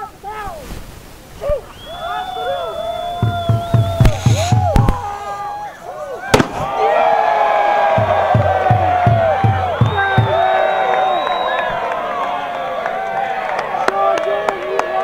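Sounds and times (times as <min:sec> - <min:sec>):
crowd shouting and cheering: 0:01.8 - 0:15.0
music with steady drumbeat: 0:03.2 - 0:05.0, 0:07.9 - 0:10.4
bonfire blast bangs: 0:06.3 - 0:06.8.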